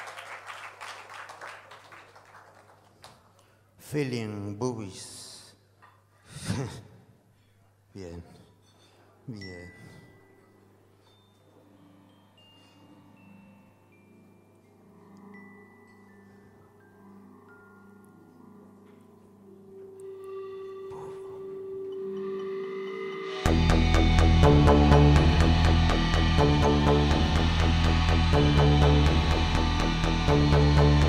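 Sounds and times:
background noise: 0.0 - 31.0
band holding a sustained note: 18.6 - 31.0
breathy vocal sound into microphone: 20.6 - 21.7.

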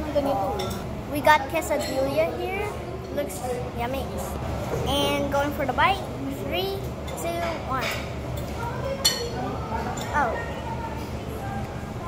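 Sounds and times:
faint background chatter: 0.0 - 12.0
tableware clink: 0.5 - 0.9, 7.8 - 10.2.

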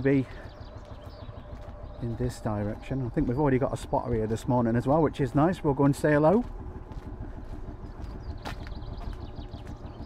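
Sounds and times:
distant tractor engine running: 0.0 - 10.0.

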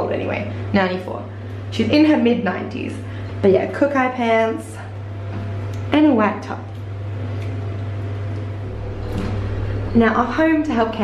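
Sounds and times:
lift hum: 6.9 - 11.0.

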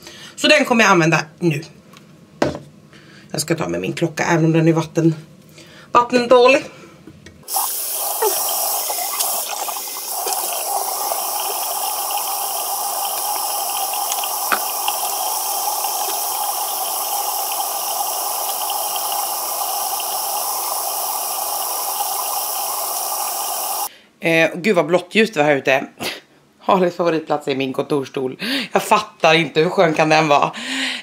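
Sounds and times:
tap running into sink: 7.5 - 17.6.

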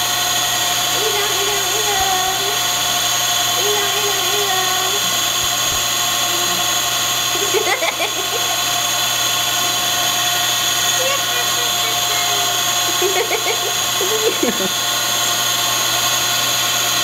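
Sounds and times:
mechanical whirring hum: 0.0 - 17.0
woman laughing: 7.3 - 8.6, 11.1 - 14.9.

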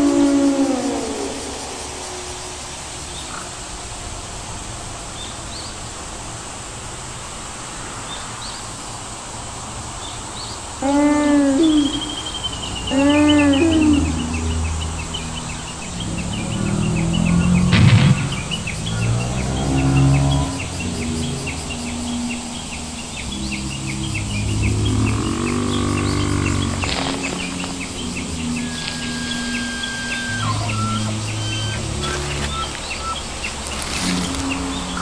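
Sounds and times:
dinosaur bellowing calls: 0.0 - 2.4, 10.8 - 21.5, 24.1 - 33.2
insects chirping: 0.0 - 35.0
birds chirping: 9.9 - 35.0.

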